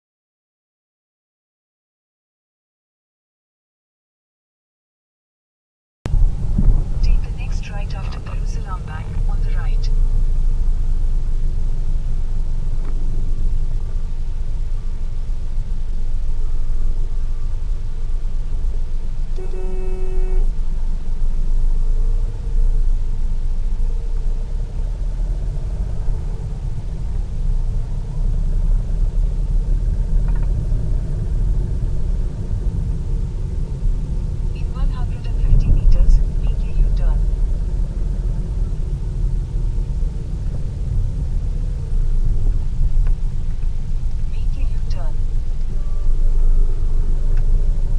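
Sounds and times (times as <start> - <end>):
car engine and tyres rumbling: 6.1 - 47.9
traffic sounds: 6.1 - 47.9
vehicle horn honking: 19.3 - 20.6.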